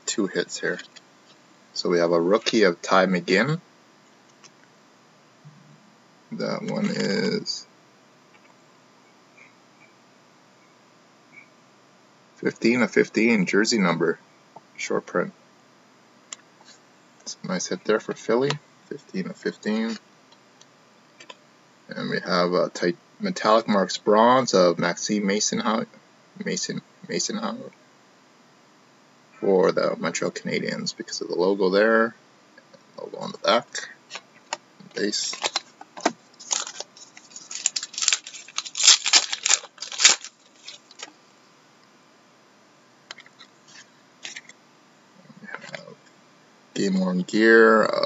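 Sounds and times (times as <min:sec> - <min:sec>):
trading cards shuffling: 0:35.0 - 0:41.2.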